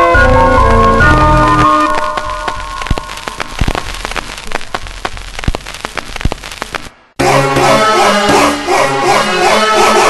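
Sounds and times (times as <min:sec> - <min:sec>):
crackling pops and snaps: 0:00.6 - 0:07.2.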